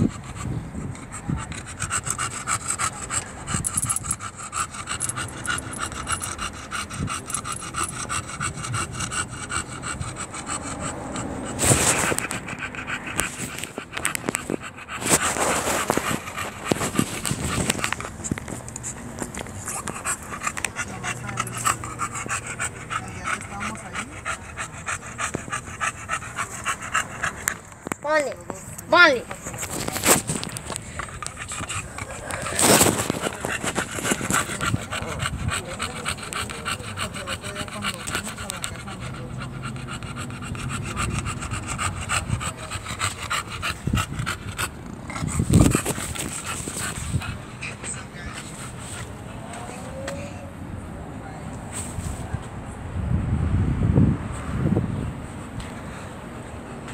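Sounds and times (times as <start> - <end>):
dog panting: 0.0 - 50.4.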